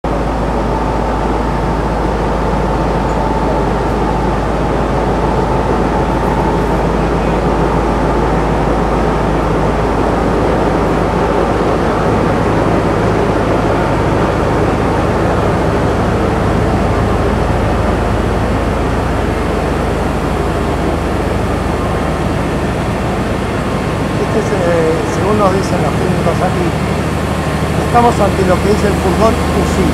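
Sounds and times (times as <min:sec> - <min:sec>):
generator droning: 0:00.0 - 0:29.9.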